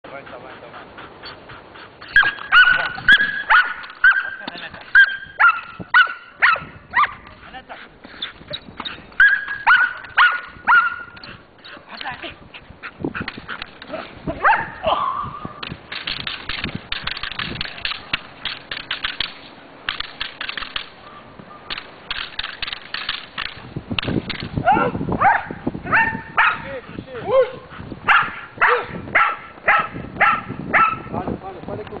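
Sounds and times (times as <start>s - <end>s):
dog barking: 2.2s - 4.4s, 5.0s - 7.2s, 9.2s - 11.2s, 14.4s - 15.3s, 24.6s - 26.7s, 27.4s - 31.1s
irregular clattering: 15.6s - 21.0s, 21.7s - 24.6s.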